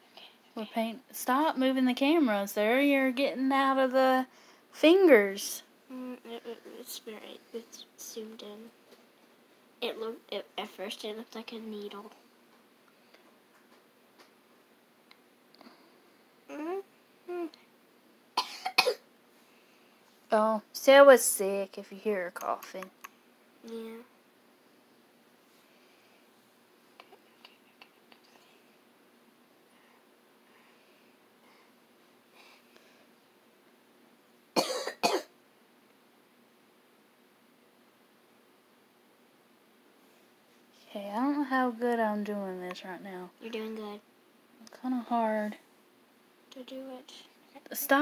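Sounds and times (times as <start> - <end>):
person coughing: 18.4 - 19.0, 34.6 - 35.3.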